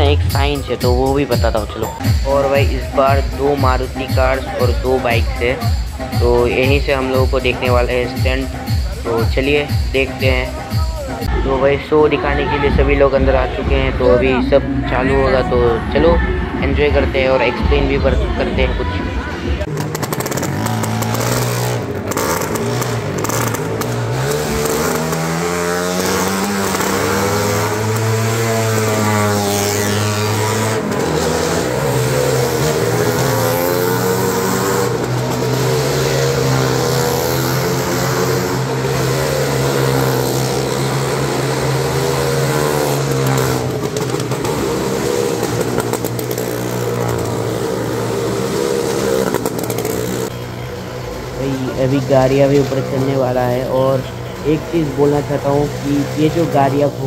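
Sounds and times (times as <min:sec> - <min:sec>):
motorcycle engines running hard: 0:00.0 - 0:57.0.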